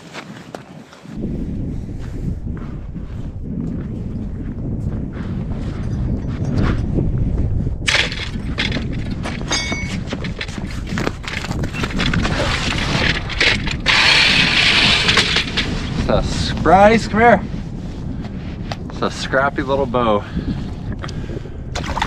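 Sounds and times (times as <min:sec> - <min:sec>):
rustling scrape of snow: 0:00.0 - 0:02.3, 0:10.6 - 0:19.3
footsteps crunching on snow: 0:00.0 - 0:05.8
wind buffeting microphone: 0:00.0 - 0:22.0.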